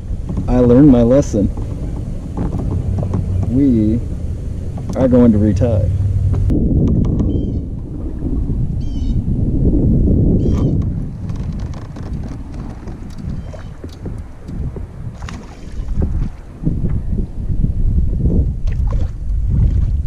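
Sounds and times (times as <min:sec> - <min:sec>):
water slapping against kayak hull: 0:00.0 - 0:08.7, 0:10.4 - 0:17.2, 0:18.6 - 0:20.0
wind buffeting microphone: 0:00.0 - 0:20.0.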